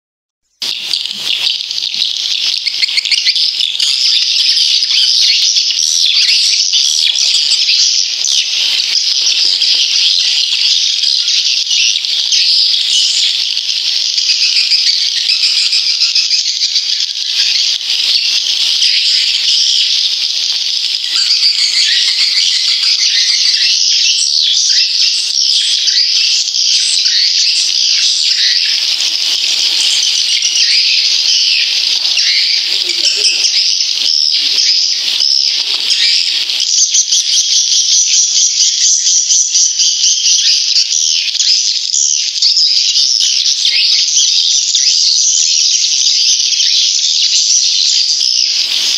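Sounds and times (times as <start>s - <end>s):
birds twittering chatter: 0.5s - 48.9s.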